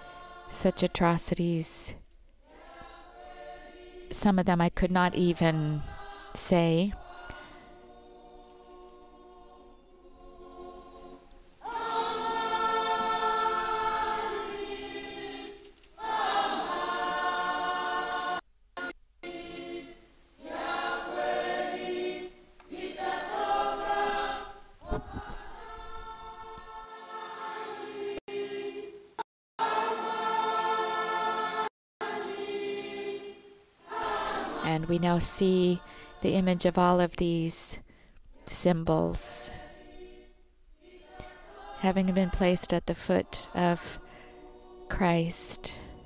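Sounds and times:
choir singing: 0.0s - 37.4s, 38.4s - 46.0s.

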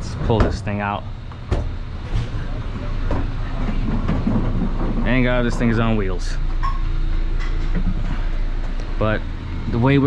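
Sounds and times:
freezer rolling on caster wheels: 2.1s - 6.4s.

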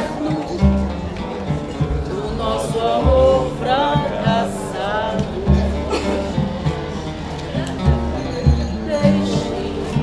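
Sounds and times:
acoustic guitar: 0.0s - 10.0s
hand drum deep beats: 0.0s - 10.0s.

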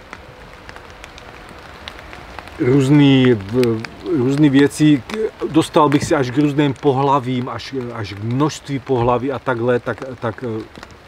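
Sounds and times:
quiet woodland ambience: 0.0s - 11.0s
light irregular ticks: 0.1s - 11.0s.

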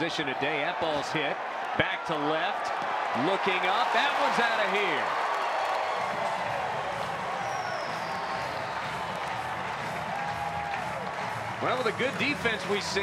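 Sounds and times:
crowd cheering and applauding: 0.0s - 13.0s
background music: 6.3s - 13.0s.

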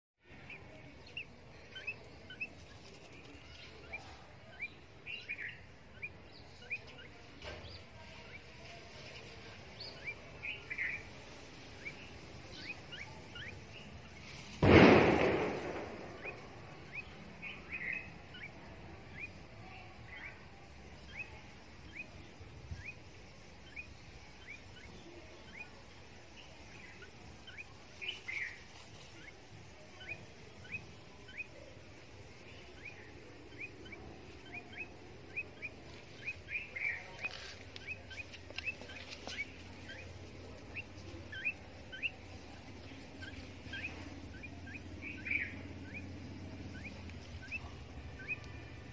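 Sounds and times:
small bird chirping: 0.2s - 48.9s
loud burst of noise: 14.5s - 16.7s.

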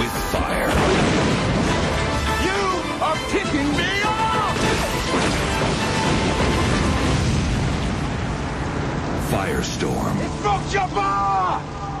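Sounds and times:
music: 0.0s - 7.5s
fire and blast sound effects: 0.0s - 10.8s.

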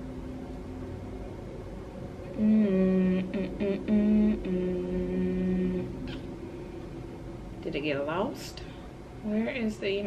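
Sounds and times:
woman humming: 2.2s - 6.3s.

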